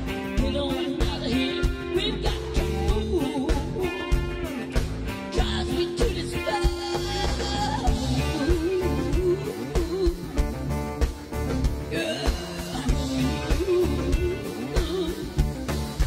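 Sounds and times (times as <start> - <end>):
live rock band playing: 0.0 - 16.0
woman singing: 0.2 - 4.5, 5.3 - 10.7, 11.7 - 16.0.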